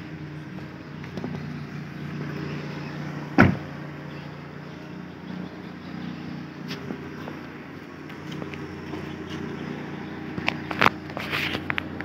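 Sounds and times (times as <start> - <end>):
car engine idling: 0.0 - 12.0
car door shutting: 3.3 - 3.8.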